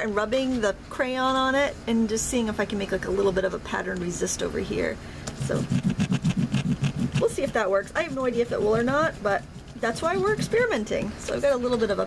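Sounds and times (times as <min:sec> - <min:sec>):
crayon scrubbing on paper: 0:05.4 - 0:11.2.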